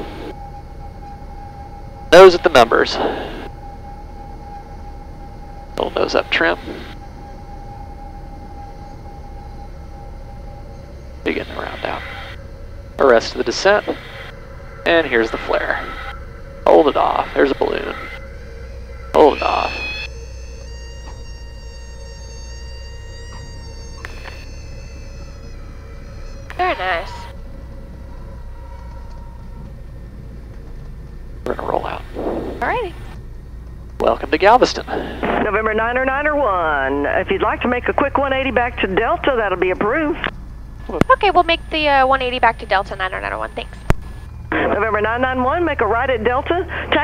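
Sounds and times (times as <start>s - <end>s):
thin steady tone: 0.0s - 30.4s
aircraft engine idling drone: 0.0s - 47.0s
stall warning horn whine: 0.0s - 47.0s.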